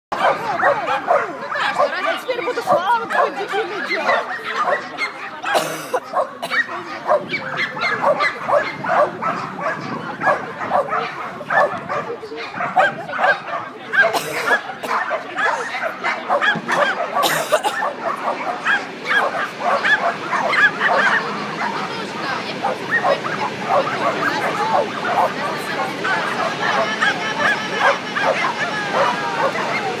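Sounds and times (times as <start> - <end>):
people's voices: 0.1 - 30.0
dog barking and yipping: 0.2 - 22.0, 22.6 - 30.0.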